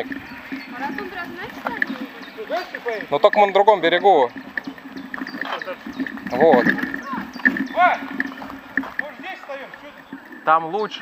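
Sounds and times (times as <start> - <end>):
bicycle riding on forest track: 0.0 - 11.0
light clicks and rattles: 0.0 - 11.0.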